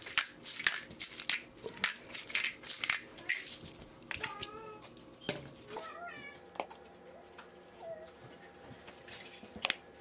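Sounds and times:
cat meowing: 0:05.7 - 0:06.4.

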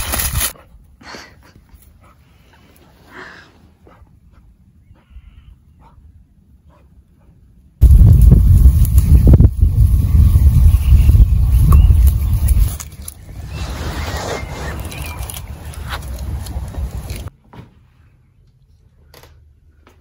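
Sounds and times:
wind buffeting microphone: 0:07.8 - 0:17.3.

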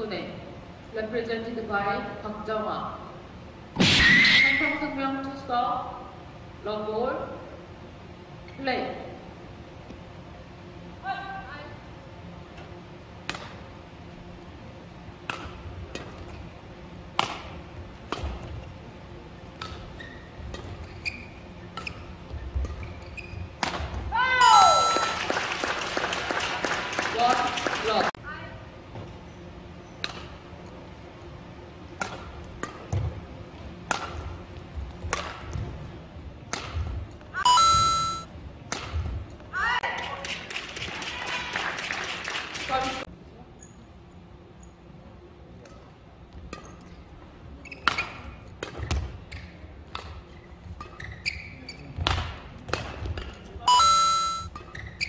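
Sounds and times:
racket striking shuttlecock: 0:15.2 - 0:16.1, 0:17.1 - 0:18.4, 0:19.6 - 0:19.9, 0:33.8 - 0:34.3, 0:35.0 - 0:35.4, 0:36.5 - 0:36.9, 0:38.7 - 0:39.0
shoe squeaks on court floor: 0:19.9 - 0:23.6, 0:47.6 - 0:48.3, 0:50.8 - 0:52.0, 0:53.8 - 0:55.0
two-note electronic chime: 0:24.4 - 0:25.2, 0:37.5 - 0:38.3, 0:53.7 - 0:54.5
spectators clapping: 0:24.8 - 0:28.2, 0:40.0 - 0:43.0.

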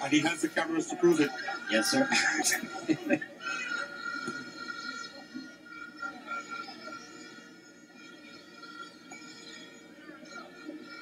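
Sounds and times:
stadium crowd hubbub: 0:00.0 - 0:11.0
steady high tones: 0:00.0 - 0:11.0.

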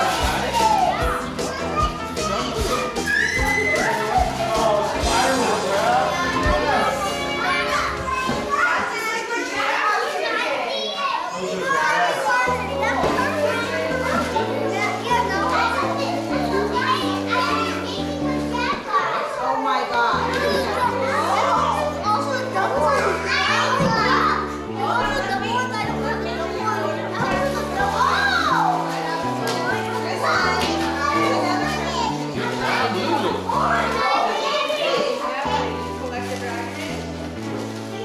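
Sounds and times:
music playing: 0:00.0 - 0:09.0, 0:20.2 - 0:34.6
children chattering: 0:00.0 - 0:38.0.

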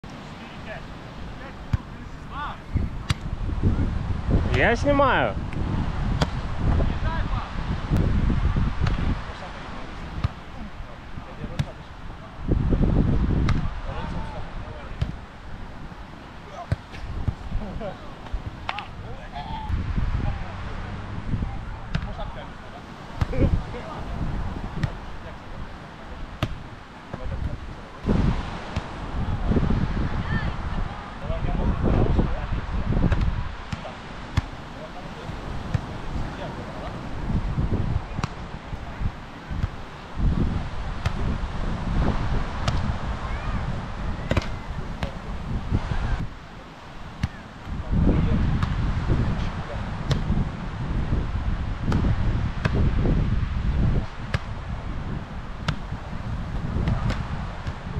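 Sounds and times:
wind rumble on microphone: 0:00.0 - 0:57.9
hand smacking volleyball: 0:03.0 - 0:03.3, 0:05.5 - 0:06.8, 0:08.8 - 0:09.0, 0:11.5 - 0:11.8, 0:13.4 - 0:13.7, 0:18.2 - 0:18.9, 0:21.9 - 0:22.2, 0:23.2 - 0:23.5, 0:24.7 - 0:25.0, 0:26.4 - 0:27.6, 0:33.0 - 0:34.5, 0:38.1 - 0:38.4, 0:41.0 - 0:41.3, 0:42.6 - 0:42.9, 0:44.2 - 0:45.2, 0:48.6 - 0:48.8, 0:50.1 - 0:50.3, 0:51.9 - 0:52.8, 0:54.3 - 0:54.5, 0:55.6 - 0:55.9, 0:56.8 - 0:57.8
softer ball hit: 0:42.6 - 0:42.9.

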